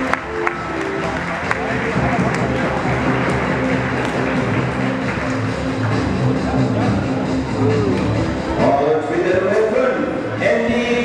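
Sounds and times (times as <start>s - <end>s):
crowd talking: 0.0s - 11.0s
music in echoing hall: 0.0s - 11.0s.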